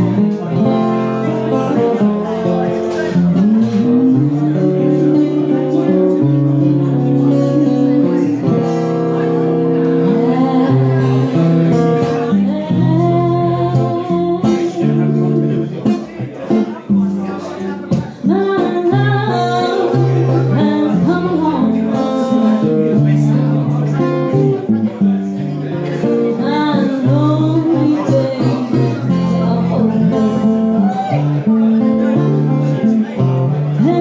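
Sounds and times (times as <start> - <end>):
acoustic guitar: 0.0 - 34.0
woman singing: 3.4 - 8.4, 10.0 - 15.1, 17.9 - 22.3, 26.4 - 30.5, 33.8 - 34.0.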